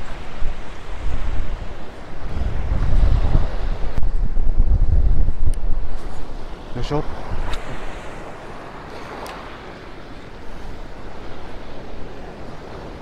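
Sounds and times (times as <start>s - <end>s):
surf breaking on beach: 0.0s - 13.0s
wind buffeting microphone: 0.0s - 13.0s.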